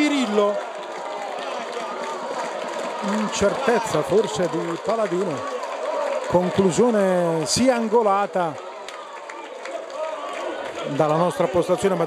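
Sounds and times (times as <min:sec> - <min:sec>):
distant crowd cheering: 0:00.0 - 0:12.0.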